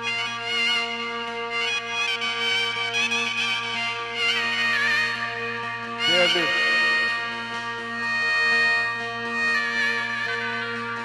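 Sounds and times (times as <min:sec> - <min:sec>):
steady held drone: 0:00.0 - 0:11.0.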